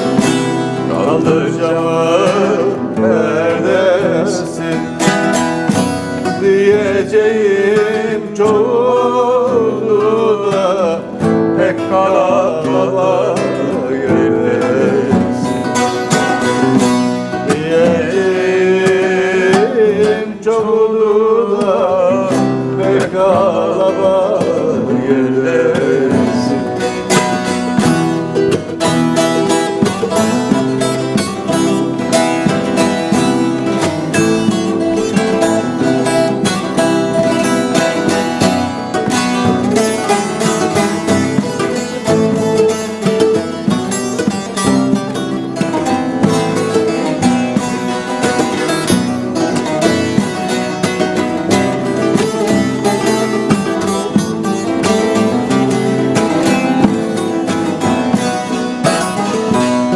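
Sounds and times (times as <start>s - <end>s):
plucked string ensemble: 0.0s - 59.9s.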